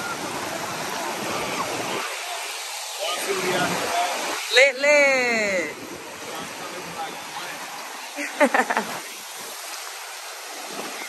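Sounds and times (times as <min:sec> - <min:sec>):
small waves washing on beach: 0:00.0 - 0:11.0.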